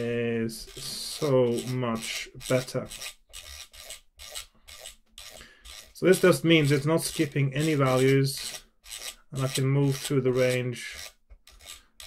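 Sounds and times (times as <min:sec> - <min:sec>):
fingers rubbing metal knob: 0:00.7 - 0:11.9.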